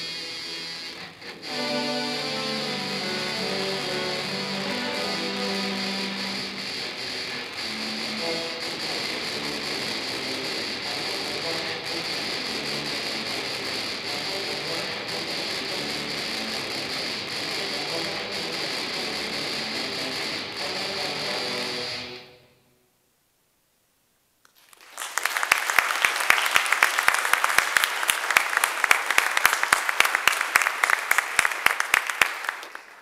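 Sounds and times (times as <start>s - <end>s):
tuba and euphonium playing metal: 0.0s - 22.4s.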